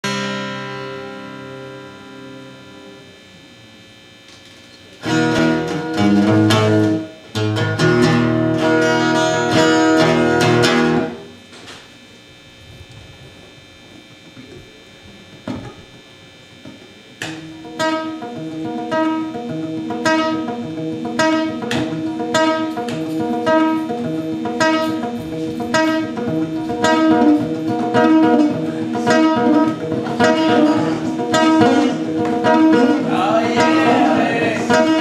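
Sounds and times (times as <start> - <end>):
acoustic guitar strumming: 0.0 - 3.2, 5.0 - 11.4, 16.6 - 35.0.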